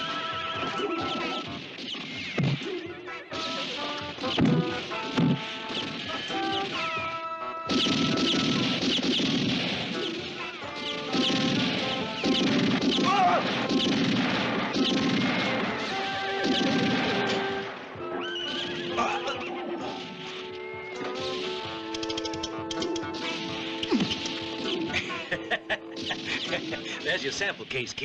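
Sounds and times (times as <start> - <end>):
fistfight crashing noises: 0.0 - 17.8
western film score: 0.0 - 28.0
horse whinnying: 18.1 - 19.8.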